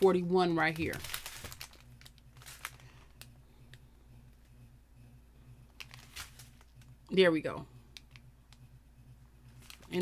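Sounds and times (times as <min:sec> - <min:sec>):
plastic bags crinkling: 0:00.0 - 0:03.3, 0:05.8 - 0:06.9, 0:09.5 - 0:10.0
low steady hum: 0:00.0 - 0:10.0.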